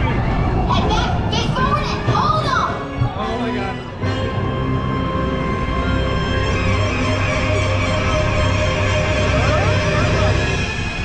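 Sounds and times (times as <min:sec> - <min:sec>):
roller coaster train rolling: 0:00.0 - 0:11.0.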